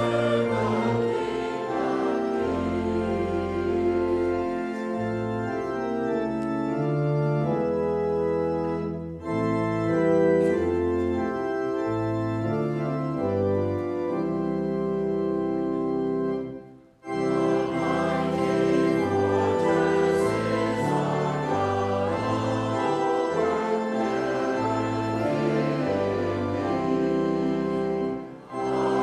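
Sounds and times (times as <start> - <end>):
church organ playing a hymn: 0.0 - 29.0.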